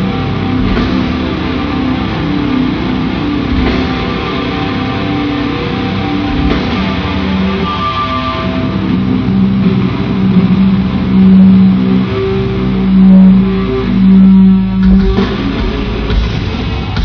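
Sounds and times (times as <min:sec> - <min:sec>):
electric guitar: 0:00.0 - 0:17.0
heavy metal band playing live: 0:00.0 - 0:17.0.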